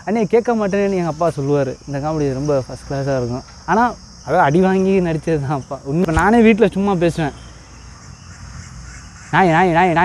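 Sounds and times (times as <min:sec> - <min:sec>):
man talking: 0:00.0 - 0:07.4, 0:09.3 - 0:10.0
insects chirring: 0:00.0 - 0:10.0.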